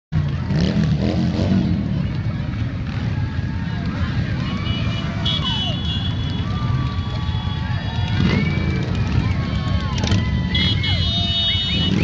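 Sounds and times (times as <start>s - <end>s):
crowd chatter: 0.1s - 12.0s
motorcycle engines running low: 0.2s - 12.0s.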